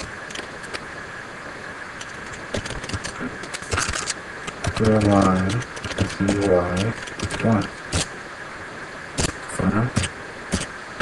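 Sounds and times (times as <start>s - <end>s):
computer keyboard clicks: 2.0s - 7.4s.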